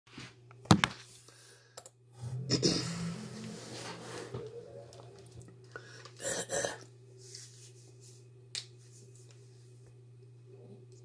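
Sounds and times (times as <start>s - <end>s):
faint low hum: 1.3s - 11.0s.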